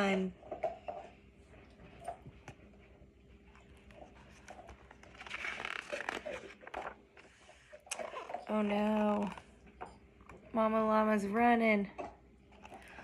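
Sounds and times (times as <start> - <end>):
page turning rustle: 4.3 - 9.4.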